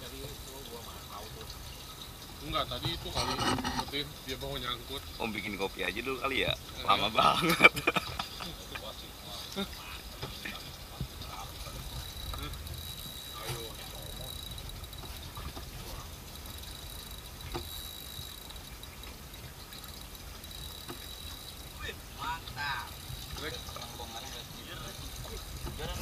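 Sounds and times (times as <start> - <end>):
faint water sounds: 0.0 - 26.0
low boat rumble: 0.0 - 26.0
faint voices: 8.6 - 16.2.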